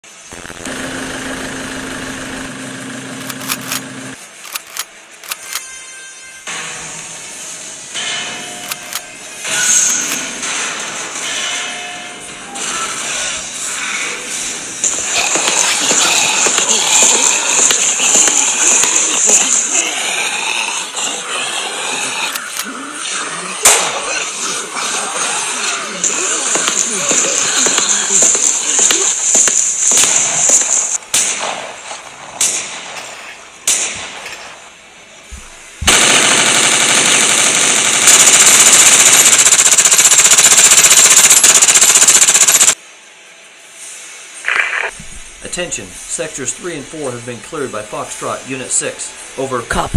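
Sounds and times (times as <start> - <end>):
automatic gunfire: 3.2 - 3.9, 35.8 - 42.8
scattered sharp cracks: 3.2 - 5.7, 14.8 - 20.1, 26.0 - 34.6, 35.8 - 42.8.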